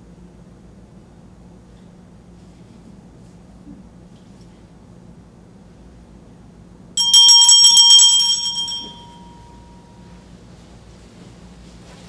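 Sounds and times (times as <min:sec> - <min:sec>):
small hand bell ringing: 0:07.0 - 0:10.0.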